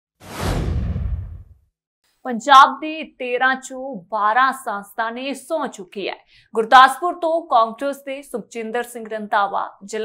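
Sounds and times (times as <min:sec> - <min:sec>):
deep rumble: 0:00.2 - 0:01.6
whoosh sound effect: 0:00.2 - 0:01.6.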